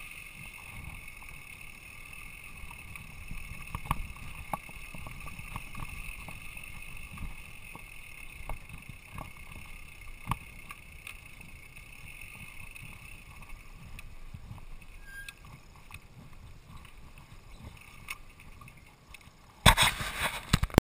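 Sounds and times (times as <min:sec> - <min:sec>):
bike knocks and rattles: 0:00.0 - 0:20.7
bicycle tyres rumbling on dirt: 0:00.0 - 0:20.8.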